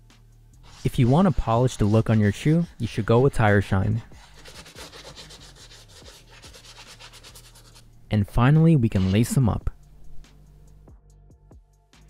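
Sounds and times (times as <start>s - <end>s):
cloth wiping leather: 0.6s - 2.7s, 3.4s - 7.8s, 8.8s - 9.6s.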